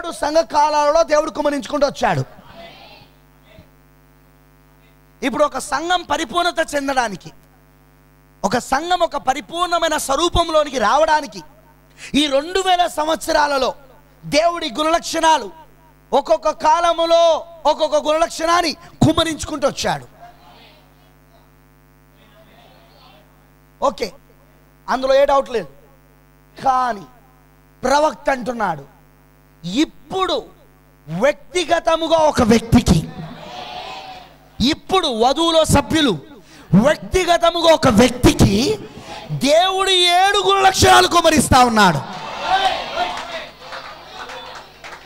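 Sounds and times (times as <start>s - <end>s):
electrical mains hum: 0.0s - 45.0s
spoken word with room echo: 20.1s - 24.6s.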